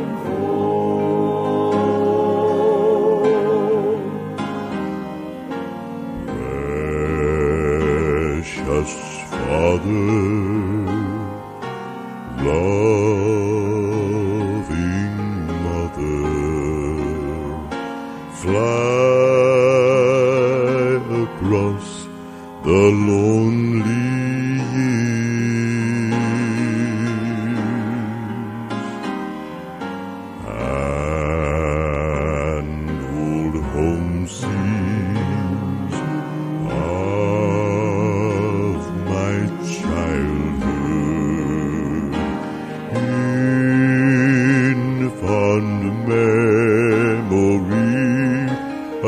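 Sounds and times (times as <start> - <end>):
male quartet singing in harmony: 0.0 - 29.2, 30.4 - 49.0
musical accompaniment: 0.0 - 49.0.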